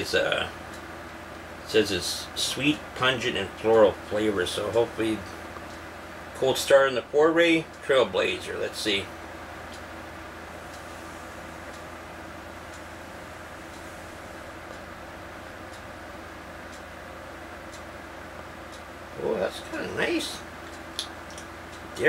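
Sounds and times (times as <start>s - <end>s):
low even hum: 0.0s - 22.0s.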